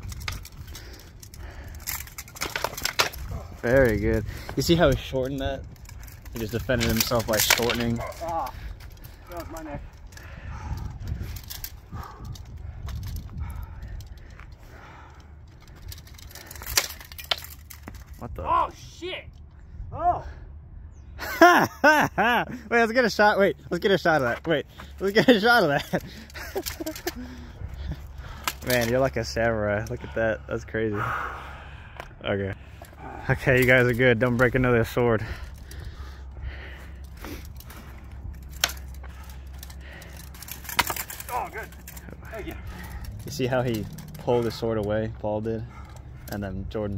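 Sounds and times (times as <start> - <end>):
light clicks of blades and gear: 0.0 - 18.4, 23.0 - 30.8, 31.9 - 46.9
sword blades clashing: 40.5 - 42.6.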